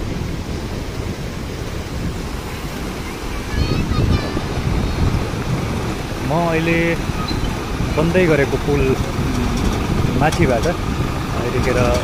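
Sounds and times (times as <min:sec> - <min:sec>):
floodwater rushing: 0:00.0 - 0:12.0
wind buffeting microphone: 0:00.0 - 0:12.0.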